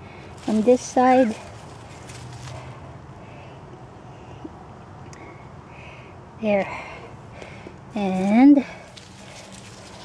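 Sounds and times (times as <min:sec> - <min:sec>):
rustling of leaves: 0:00.0 - 0:03.4, 0:07.9 - 0:10.0.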